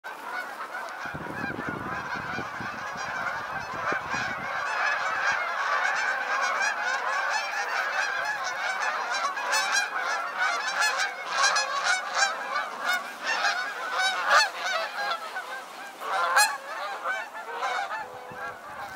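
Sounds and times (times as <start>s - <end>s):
geese honking: 0.1s - 18.9s
water splashing: 4.7s - 18.9s.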